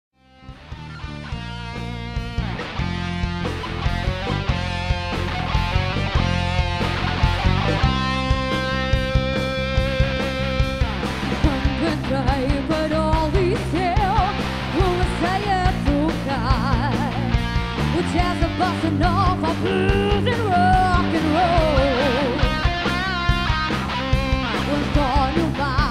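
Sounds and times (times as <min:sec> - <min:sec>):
guitar chords: 0:00.2 - 0:25.9
steady drum beat: 0:00.6 - 0:25.9
wavering lead melody: 0:00.7 - 0:12.0.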